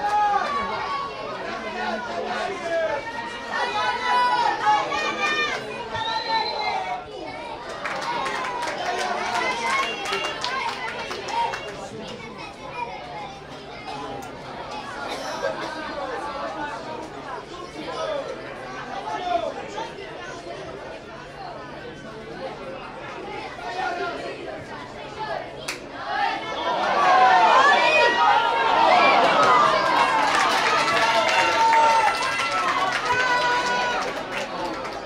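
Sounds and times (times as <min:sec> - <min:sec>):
many voices talking and calling out: 0:00.0 - 0:35.0.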